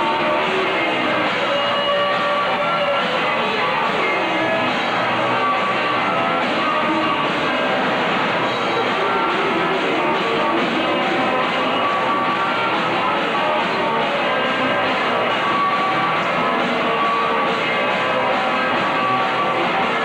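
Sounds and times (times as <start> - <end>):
muffled live rock band: 0.0 - 20.0.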